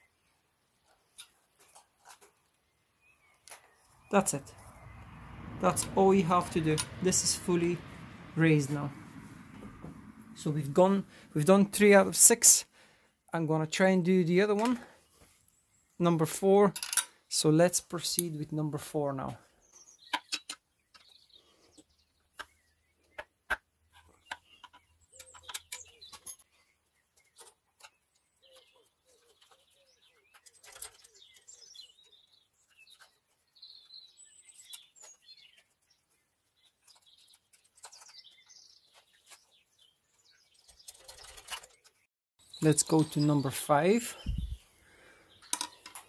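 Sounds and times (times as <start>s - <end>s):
faint bird chirps: 24.1s - 46.0s.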